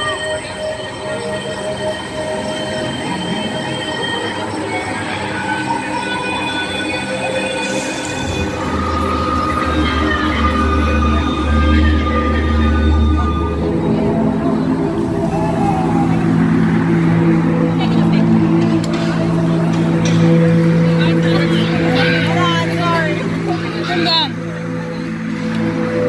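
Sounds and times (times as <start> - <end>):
eerie held screeching tones: 0.0 - 17.6.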